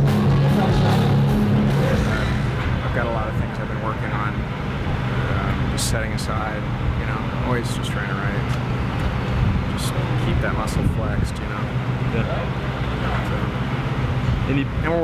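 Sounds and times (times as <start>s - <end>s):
rock music: 0.0s - 3.0s
indistinct voices: 0.0s - 8.6s
steady low hum: 0.0s - 15.0s.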